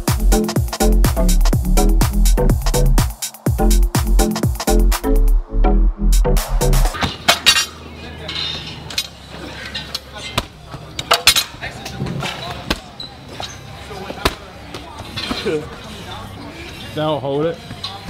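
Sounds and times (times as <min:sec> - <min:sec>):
electronic dance music: 0:00.0 - 0:07.0.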